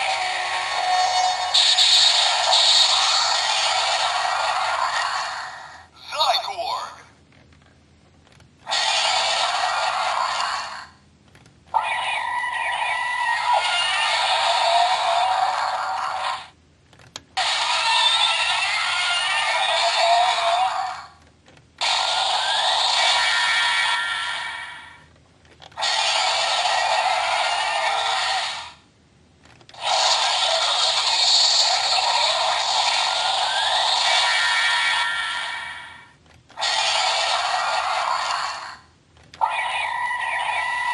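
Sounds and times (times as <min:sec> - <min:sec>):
toy electronic sound effects: 0:00.0 - 0:04.1, 0:11.7 - 0:16.4, 0:17.4 - 0:21.1, 0:29.7 - 0:38.8, 0:39.4 - 0:40.9.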